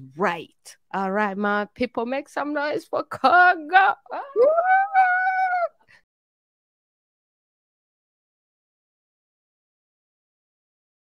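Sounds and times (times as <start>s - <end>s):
woman squealing: 4.1s - 5.9s.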